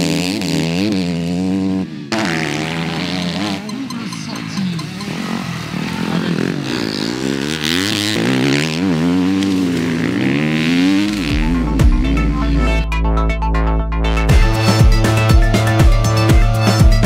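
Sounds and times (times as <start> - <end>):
motorcycle engines revving: 0.0 - 12.9, 14.1 - 17.0
background music: 10.8 - 17.0.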